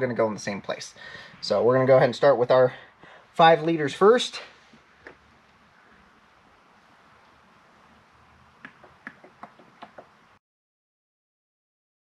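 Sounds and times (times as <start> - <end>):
faint room hiss: 0.0 - 10.4.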